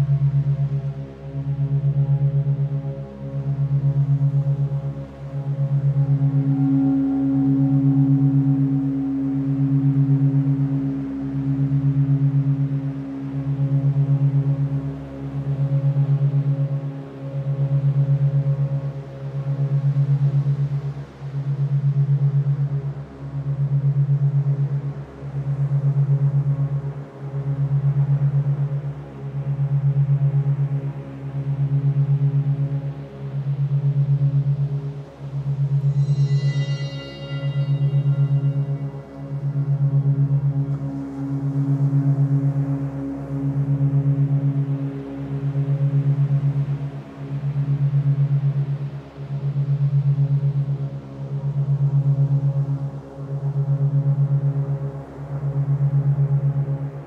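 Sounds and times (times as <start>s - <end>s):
low beating drone tone: 0.0s - 57.0s
higher held tones: 35.9s - 39.0s.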